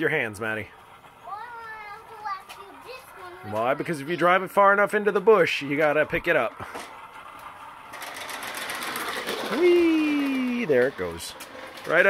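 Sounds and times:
young child calling: 0:01.3 - 0:03.6.

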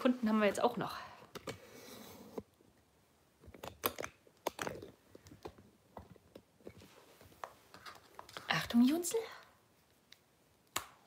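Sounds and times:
faint irregular clicks and taps: 0:03.4 - 0:08.5, 0:09.8 - 0:11.0.

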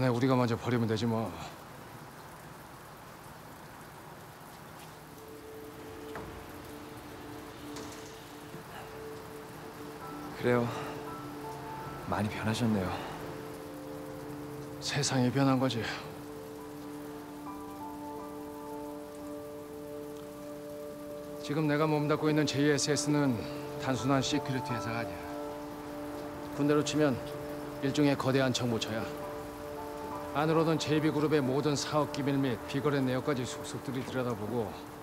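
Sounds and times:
faint outdoor hiss: 0:00.0 - 0:35.0
soft background score: 0:00.0 - 0:35.0.

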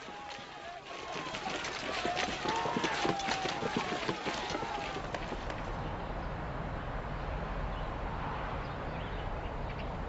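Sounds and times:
soldiers' voices: 0:00.0 - 0:05.7.

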